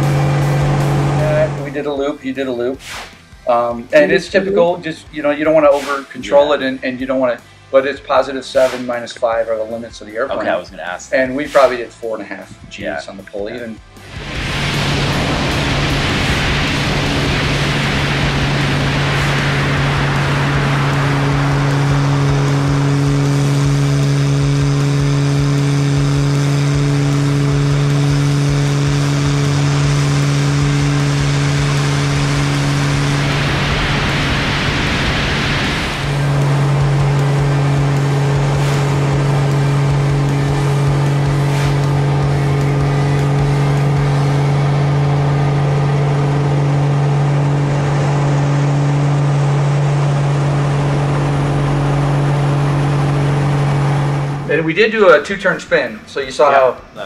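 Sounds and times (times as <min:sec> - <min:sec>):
airplane engine droning: 0:00.0 - 0:02.0, 0:14.0 - 0:57.0
rush of wind: 0:14.2 - 0:21.5, 0:33.1 - 0:36.4.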